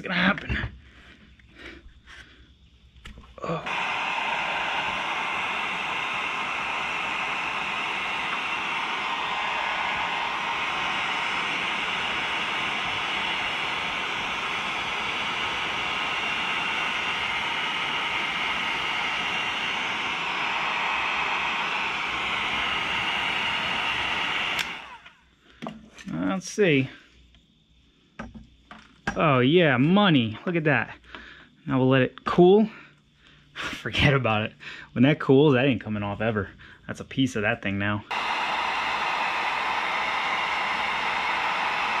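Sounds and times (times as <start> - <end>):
heat gun fan blowing: 3.4 - 26.9, 37.0 - 42.0.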